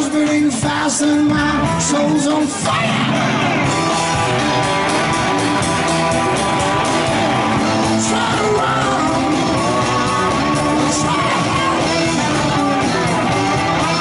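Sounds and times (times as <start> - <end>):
drum kit: 0.0 - 14.0
electric guitar: 0.0 - 14.0
keyboard: 0.0 - 14.0
live rock band: 0.0 - 14.0.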